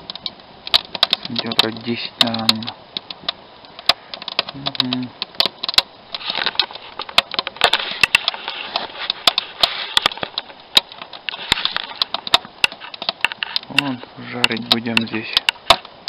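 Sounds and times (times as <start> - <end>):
sharp pops and snaps: 0.0 - 16.0
steady hiss: 0.0 - 16.0
wood fire crackling: 0.0 - 16.0.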